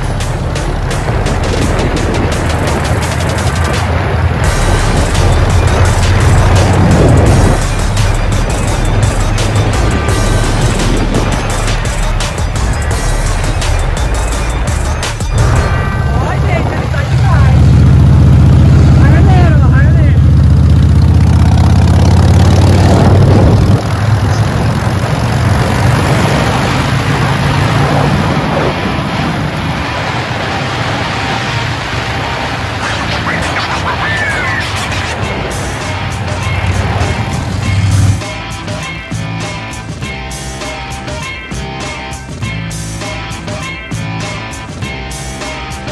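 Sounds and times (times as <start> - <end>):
wind on microphone: 0.0 - 11.8, 22.4 - 32.9
motorcycle engine: 0.0 - 43.6
background music: 0.0 - 45.9.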